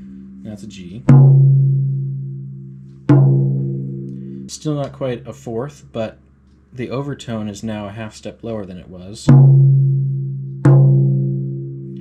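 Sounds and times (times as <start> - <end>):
tom drum struck with mallet: 0.0 - 4.5, 9.3 - 12.0.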